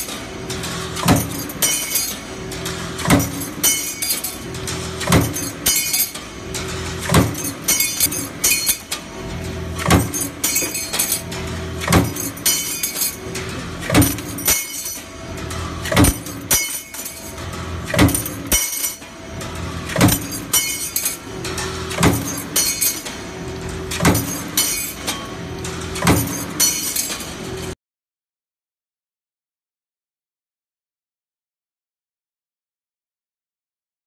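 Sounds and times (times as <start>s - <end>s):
power press stamping: 0.0s - 27.8s
steady machine hum: 0.0s - 27.8s.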